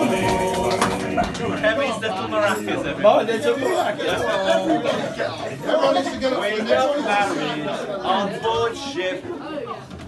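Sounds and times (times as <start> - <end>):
men singing together: 0.0 - 3.0
group talking: 0.0 - 10.0.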